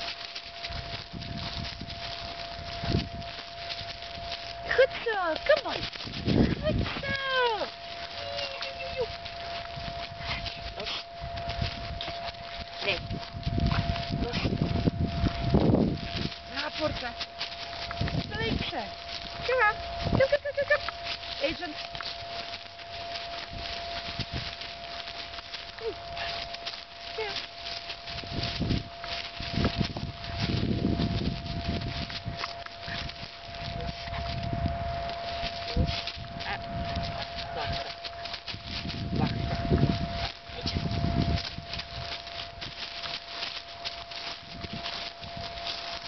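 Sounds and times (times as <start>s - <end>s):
low rumbling noise: 0.0s - 46.0s.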